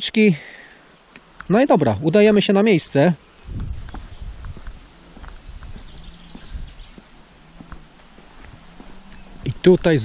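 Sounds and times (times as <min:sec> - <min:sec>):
footsteps on asphalt: 0:03.3 - 0:10.0.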